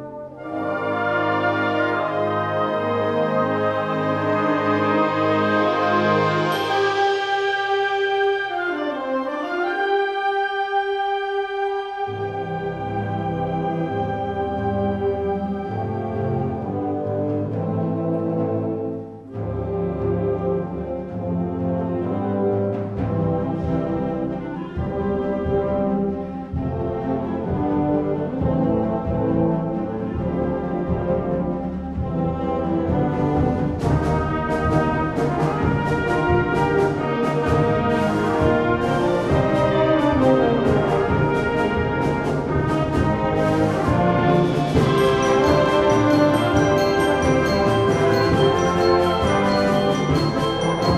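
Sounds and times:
wind band playing chords: 0.0s - 50.9s
percussion strikes: 5.8s - 8.6s, 32.0s - 50.9s.

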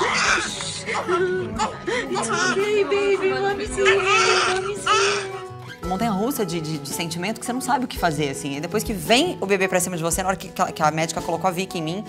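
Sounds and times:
newborn baby crying: 0.0s - 5.8s
woman crying and whimpering: 0.0s - 5.9s.

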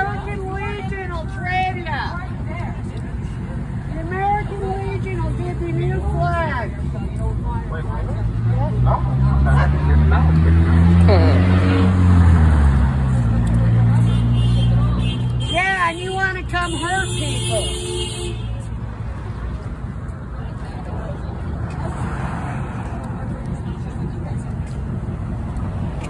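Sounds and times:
vehicle engine running: 18.6s - 26.0s.

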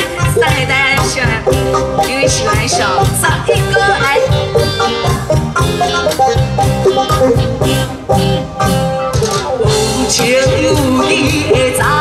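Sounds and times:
live band playing: 0.0s - 12.0s
steady drum beat: 0.0s - 12.0s.

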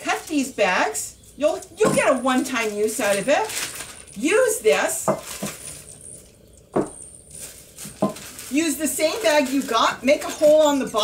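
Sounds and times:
plastic bag crinkling: 0.0s - 11.0s
cup knocking: 6.7s - 7.0s, 8.0s - 8.2s.

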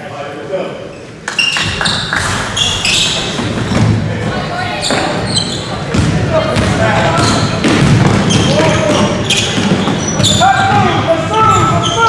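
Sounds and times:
spectators' voices echoing: 0.0s - 12.0s
short high squeaks: 0.9s - 3.3s, 8.3s - 10.6s
basketball bouncing on hardwood: 5.9s - 10.9s.

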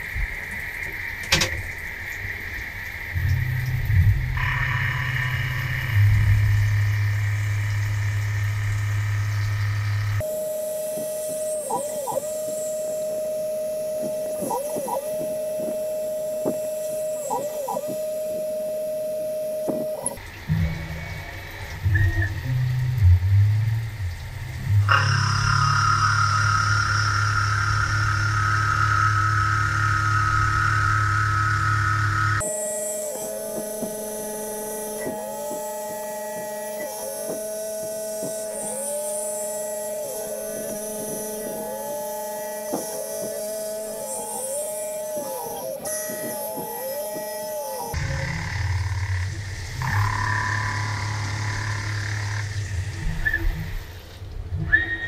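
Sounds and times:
milling machine whine: 0.0s - 55.0s.

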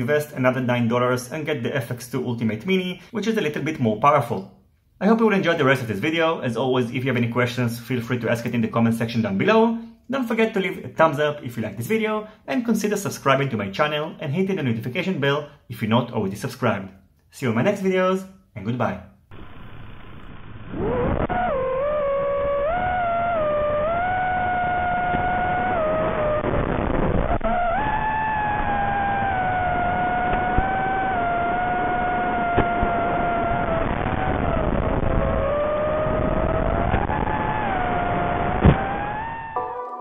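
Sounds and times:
drone motors whining: 19.3s - 39.6s.

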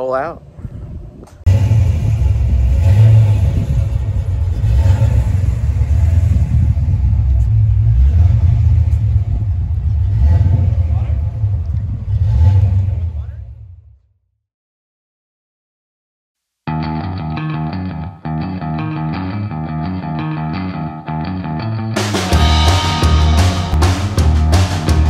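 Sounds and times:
car engine rumbling idle: 1.5s - 13.8s.

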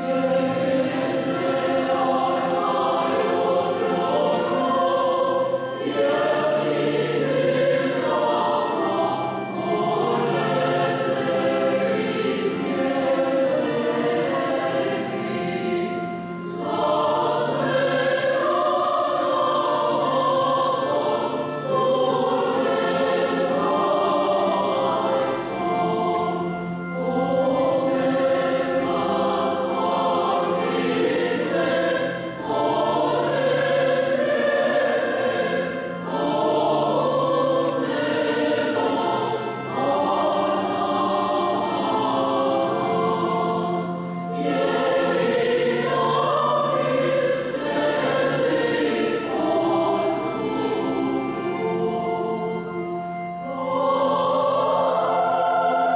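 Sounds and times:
choir singing a chant: 0.0s - 55.9s.

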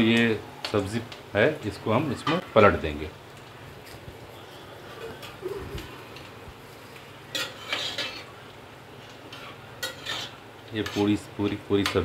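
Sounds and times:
metal ladle scraping a pot: 7.3s - 8.3s, 9.3s - 11.1s.

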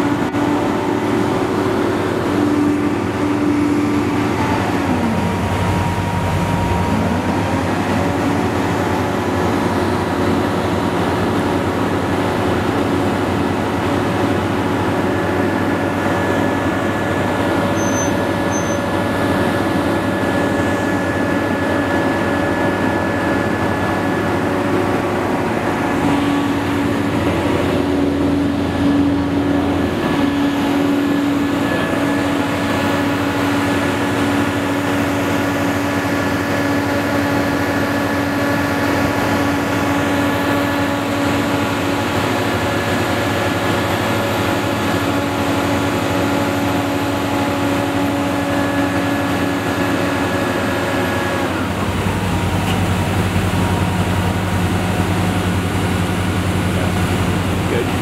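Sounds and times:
crane engine and hydraulics drone: 0.0s - 58.0s.

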